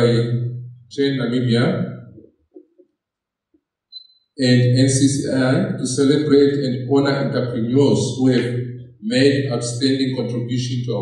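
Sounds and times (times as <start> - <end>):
man speaking into microphone: 0.0 - 1.8, 4.4 - 11.0.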